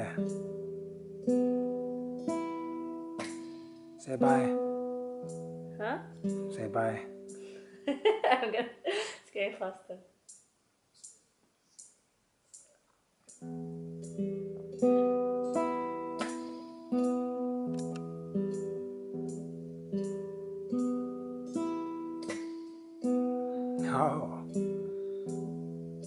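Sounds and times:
classical guitar arpeggios: 0.0 - 7.8, 13.4 - 26.0
faint regular ticks: 10.2 - 14.2.

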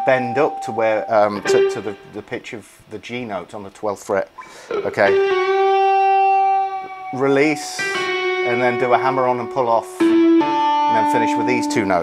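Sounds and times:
electric guitar bent note: 0.0 - 2.4, 4.4 - 11.4.

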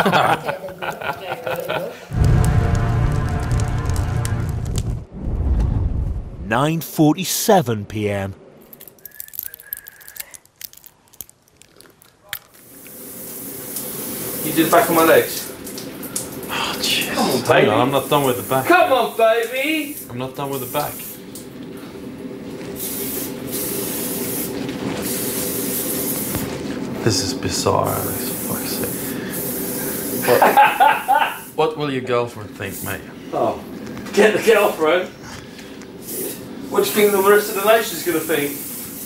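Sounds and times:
sprayer hissing: 22.8 - 26.5, 27.7 - 31.5, 36.0 - 39.0.

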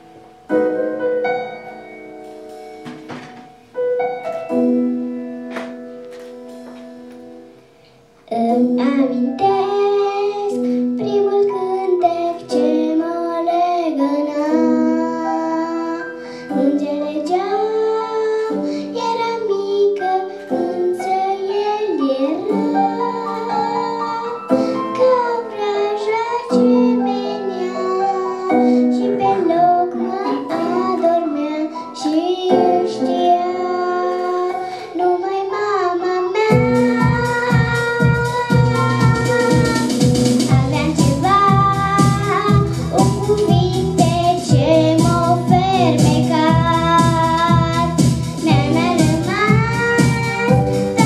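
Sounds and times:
instrumental accompaniment: 0.0 - 51.0
girl singing into a microphone: 8.2 - 51.0.

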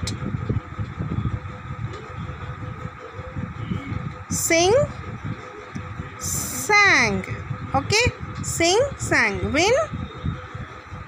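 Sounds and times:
faint steady hum: 0.0 - 11.0
low rumbling background noise: 0.0 - 11.0.

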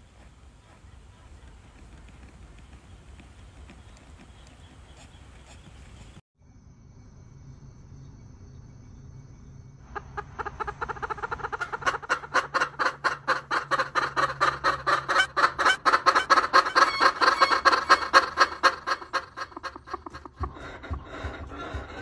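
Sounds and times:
hen clucking: 9.9 - 22.0.

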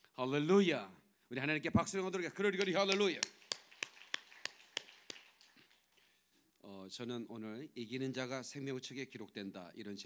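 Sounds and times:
congregation clapping in rhythm: 2.4 - 6.2.

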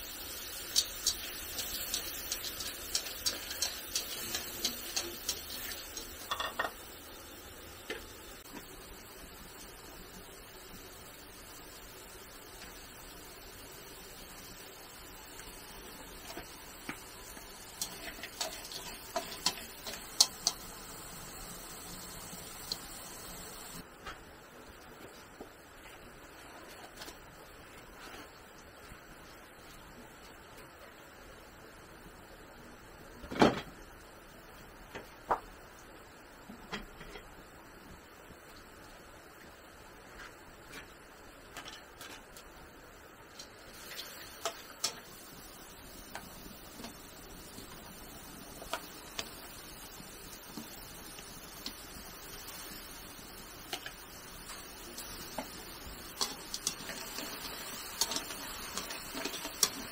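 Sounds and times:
utensil clinking against wok: 2.4 - 6.8.

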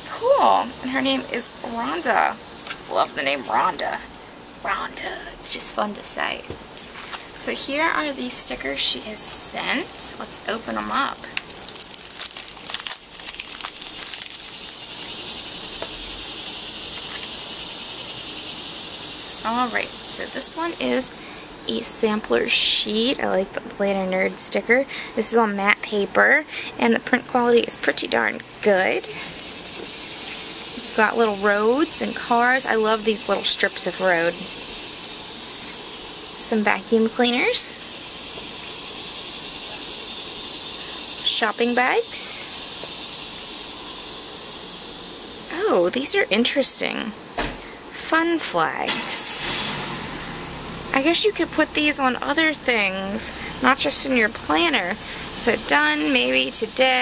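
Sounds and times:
steady high hiss: 0.0 - 57.0
plastic sleeve crinkling: 6.6 - 7.3, 9.8 - 17.4.

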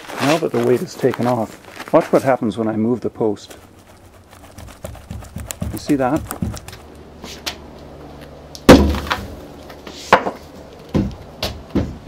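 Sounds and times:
wooden post knocking: 4.9 - 6.8, 10.2 - 12.0.

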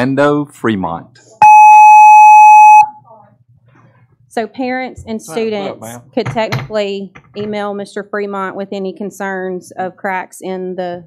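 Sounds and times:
high-pitched timer beep: 1.4 - 3.0.

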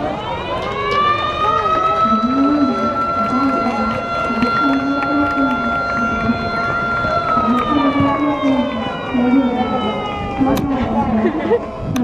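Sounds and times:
motor siren steady high tone: 0.0 - 12.0.

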